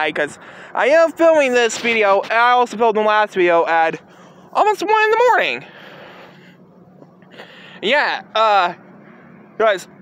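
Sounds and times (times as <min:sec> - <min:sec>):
man speaking: 0:00.0 - 0:05.7, 0:07.8 - 0:08.8
short breath: 0:05.7 - 0:06.6, 0:07.3 - 0:07.8.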